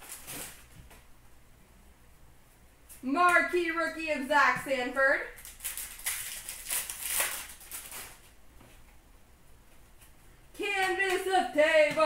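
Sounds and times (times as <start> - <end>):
foil wrapper crinkling: 0.0 - 0.7, 5.3 - 8.3
handling of cards: 5.4 - 8.9.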